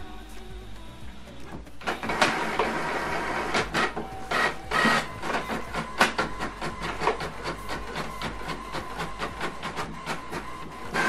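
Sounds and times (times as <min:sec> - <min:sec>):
printer whining tones: 0:00.0 - 0:11.0
printer whirring and clicking: 0:00.4 - 0:11.0.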